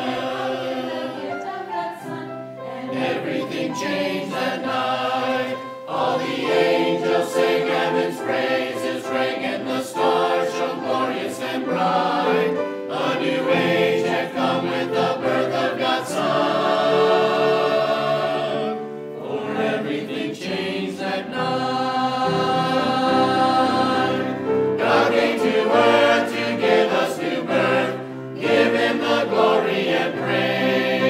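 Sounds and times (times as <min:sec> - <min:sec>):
mixed choir singing in parts: 0:00.0 - 0:31.0.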